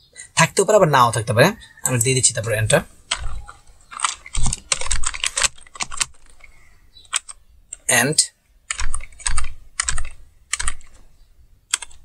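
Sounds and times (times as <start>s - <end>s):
typing on computer keyboard: 3.1s - 7.9s, 8.7s - 11.0s, 11.7s - 12.0s.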